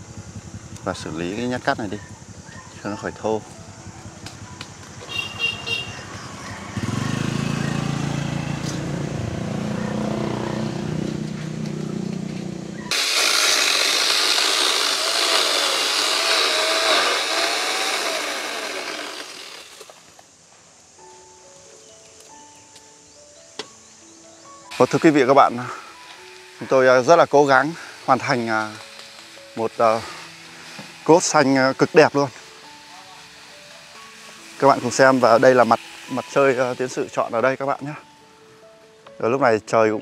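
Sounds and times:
power tool cutting wood with whine: 12.9s - 20.0s, 24.7s - 37.9s
power tool motor hum: 12.9s - 20.0s, 24.7s - 37.2s
soft musical notes: 21.0s - 40.0s.

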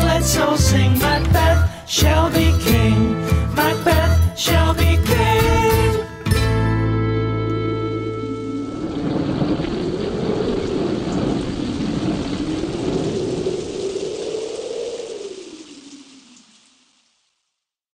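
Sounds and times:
song's last chord ringing: 2.5s - 9.6s
slow wavering low howl: 7.0s - 16.5s
rain: 7.3s - 17.8s
rumbling thunder: 7.6s - 16.4s.

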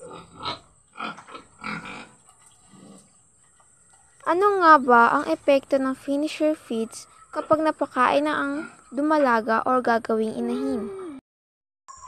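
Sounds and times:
pig grunting: 0.0s - 3.2s, 6.8s - 9.1s, 10.4s - 11.2s.

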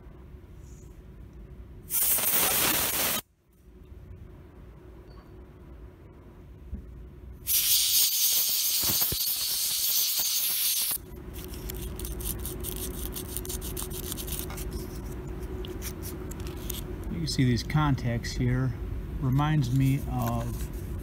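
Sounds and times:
aerosol can spraying: 1.9s - 3.2s, 7.5s - 11.0s.

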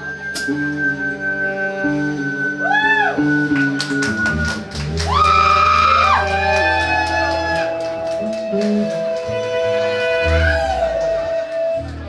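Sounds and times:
deep bass line: 0.0s - 12.0s
lead melody with bending notes: 0.0s - 12.0s.

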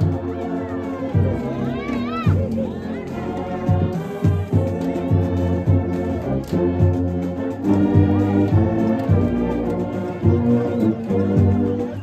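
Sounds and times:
high call over band: 0.0s - 4.7s
brass band playing a hymn: 0.0s - 12.0s.

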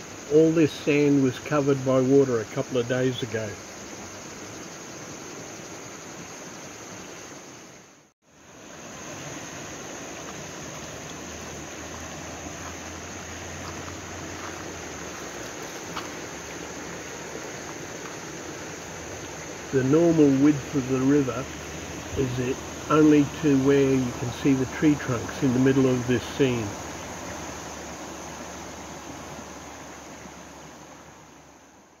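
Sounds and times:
high-pitched insect drone: 0.0s - 7.8s, 8.4s - 31.4s
river rushing: 0.0s - 32.0s.

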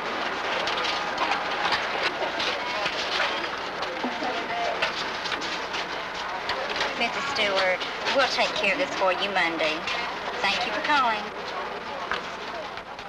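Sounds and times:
murmur of distant voices: 0.0s - 13.0s.

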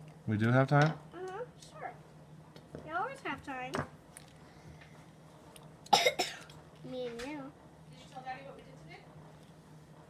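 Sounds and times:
person coughing: 5.9s - 6.5s.

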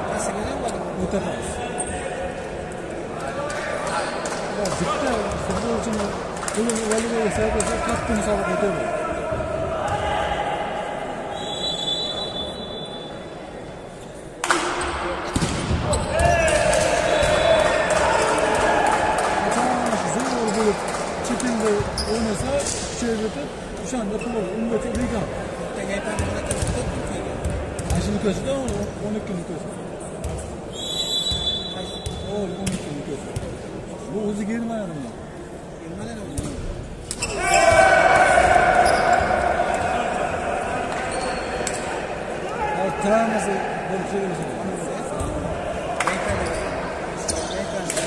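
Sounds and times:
voices in echoing hall: 0.0s - 48.0s
short high whistle blast: 11.3s - 13.2s
volleyball strikes: 14.4s - 18.0s
people shouting: 37.2s - 40.9s.

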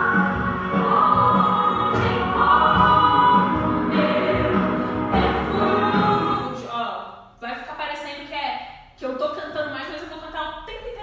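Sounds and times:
choir singing: 0.0s - 6.7s.

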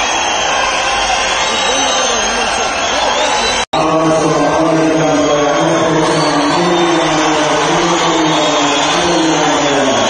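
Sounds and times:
large crowd roaring: 0.0s - 10.0s
chanting voice over loudspeakers: 3.8s - 10.0s.

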